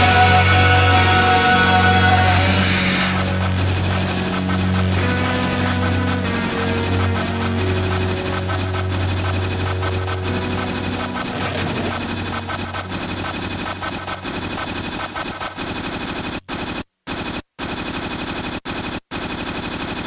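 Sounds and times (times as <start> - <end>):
low musical tone: 0.0 - 14.2
distorted electronic noise crackling: 0.0 - 16.8.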